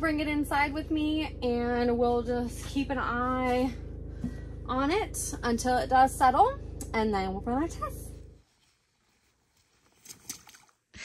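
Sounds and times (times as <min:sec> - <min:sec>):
low steady hum: 0:00.0 - 0:10.6.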